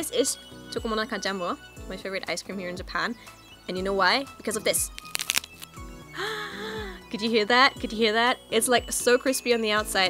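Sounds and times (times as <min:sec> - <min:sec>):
wafer snapping: 0:04.9 - 0:05.8.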